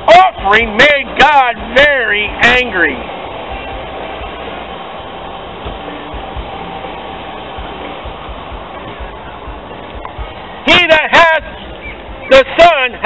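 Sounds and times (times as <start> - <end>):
street background hiss: 0.0 - 13.0.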